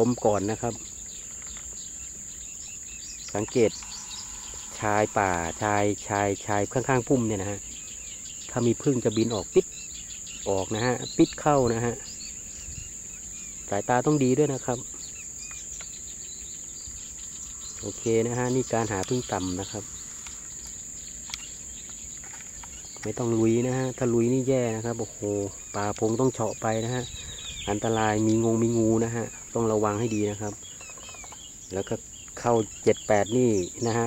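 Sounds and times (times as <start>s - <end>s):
high-pitched insect trill: 0.0s - 34.0s.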